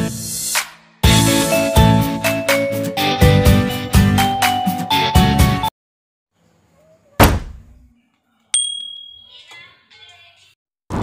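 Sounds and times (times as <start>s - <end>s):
sharp thump: 7.2s - 7.7s
high bell ding: 8.6s - 9.5s.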